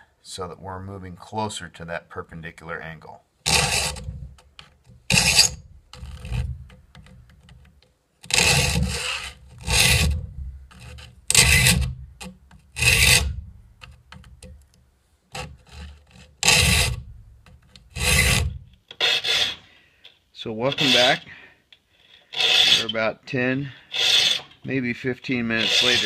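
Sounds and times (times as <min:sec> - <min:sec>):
file rasping on saw teeth: 0:03.5 - 0:04.4, 0:05.1 - 0:06.5, 0:08.3 - 0:13.4, 0:15.4 - 0:17.1, 0:17.8 - 0:19.7, 0:20.7 - 0:21.3, 0:22.2 - 0:23.0, 0:23.7 - 0:24.6, 0:25.4 - 0:26.0.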